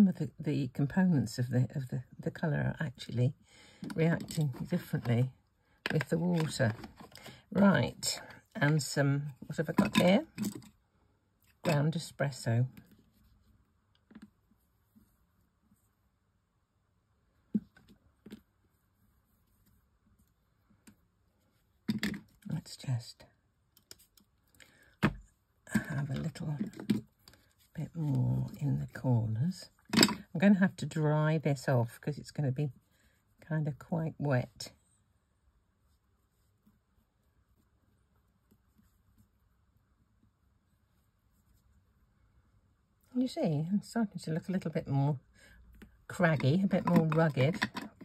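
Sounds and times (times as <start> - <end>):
paintbrush scratching on cardstock: 35.8 - 42.0.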